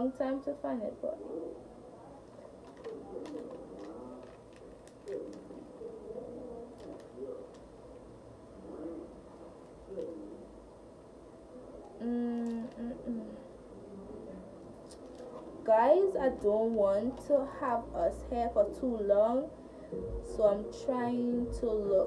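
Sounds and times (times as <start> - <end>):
paper receipt crinkling: 2.2 - 8.0, 14.7 - 15.6
dove cooing: 5.0 - 7.6, 8.6 - 10.6.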